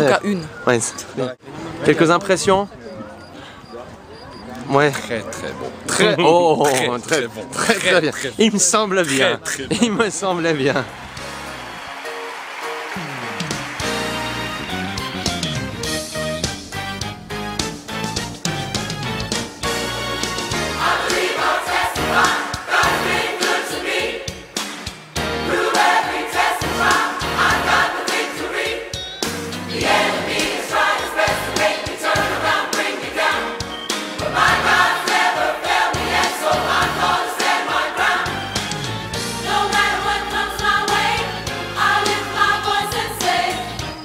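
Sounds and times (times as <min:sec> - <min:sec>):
instrumental backing with bass line: 0:13.0 - 0:21.3, 0:38.0 - 0:44.0
gospel choir singing: 0:20.4 - 0:44.0.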